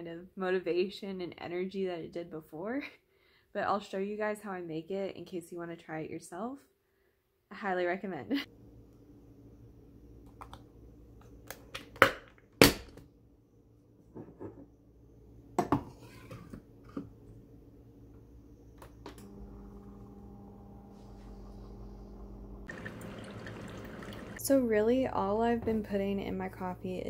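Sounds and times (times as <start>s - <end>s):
coffee brewer pump humming: 18.6s - 24.6s
coffee streaming into mug: 22.7s - 24.4s.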